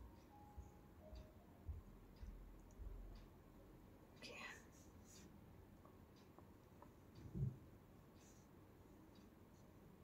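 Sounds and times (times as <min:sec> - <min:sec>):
faint low bumps: 0:07.2 - 0:07.7.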